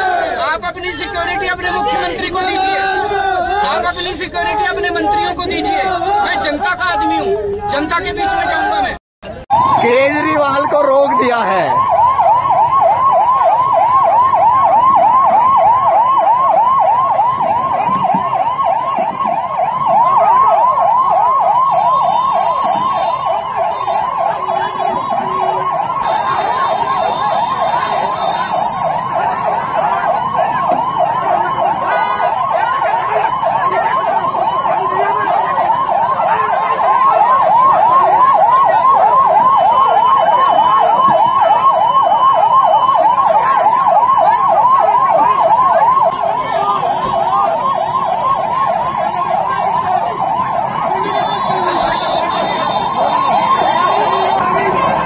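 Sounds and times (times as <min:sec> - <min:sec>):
siren yelping: 0:00.0 - 0:55.0.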